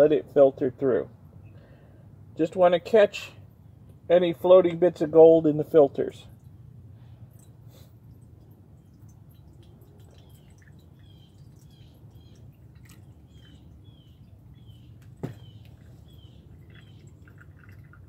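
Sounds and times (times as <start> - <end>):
liquid trickling and dripping: 6.2 - 18.0
bird chirping: 8.5 - 17.6.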